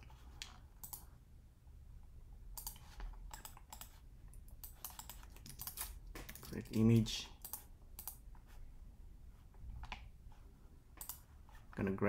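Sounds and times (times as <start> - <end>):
computer keyboard typing: 0.3 - 1.1, 2.5 - 8.2, 11.0 - 11.3.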